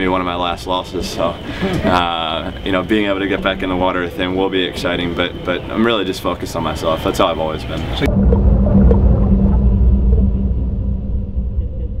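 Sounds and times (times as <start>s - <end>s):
deep rumble with low hum: 7.6s - 12.0s.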